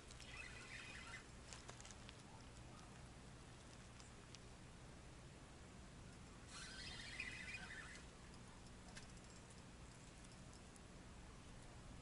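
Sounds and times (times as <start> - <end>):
fishing reel whirring: 6.5 - 8.1.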